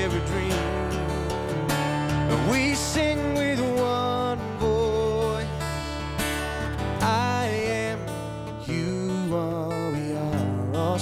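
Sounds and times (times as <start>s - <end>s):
low bass notes: 0.0s - 9.6s
live country music: 0.0s - 11.0s
strummed acoustic guitar: 0.0s - 11.0s.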